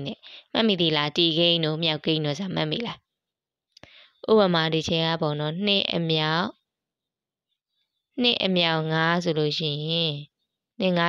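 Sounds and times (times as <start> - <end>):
person speaking: 8.2 - 11.0.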